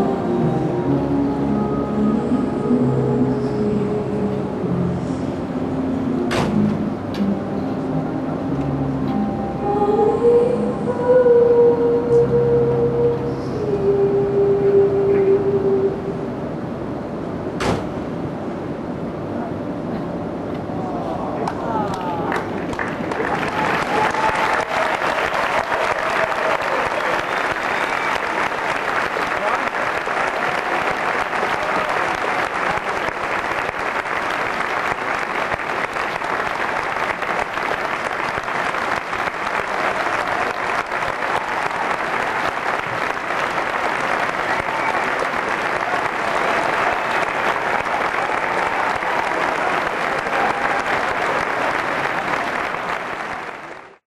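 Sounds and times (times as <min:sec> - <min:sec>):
audience applauding: 0:21.4 - 0:54.0.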